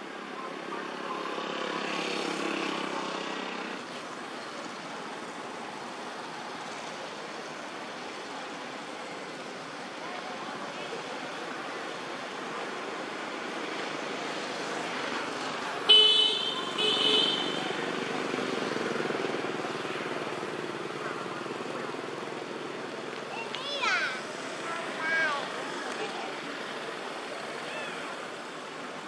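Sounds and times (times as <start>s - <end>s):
traffic noise: 0.0s - 29.0s
vehicle horn blasts: 15.9s - 17.7s.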